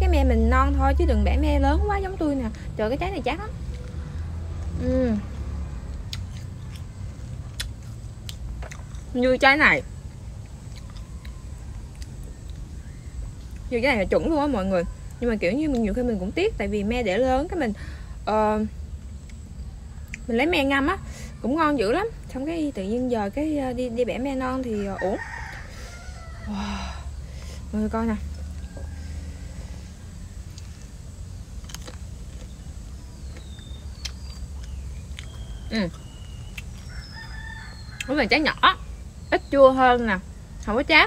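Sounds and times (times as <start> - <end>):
people talking: 0.0 - 3.6, 4.8 - 5.3, 9.1 - 9.9, 13.7 - 18.7, 20.3 - 25.2, 27.7 - 28.2, 35.7 - 36.0, 38.1 - 41.0
steady low rumble: 0.0 - 24.9, 25.6 - 37.2
person chewing crunchy food: 5.9 - 9.1, 10.0 - 13.7, 30.4 - 37.2
rooster crowing: 24.5 - 27.1, 28.2 - 30.8, 36.8 - 38.5.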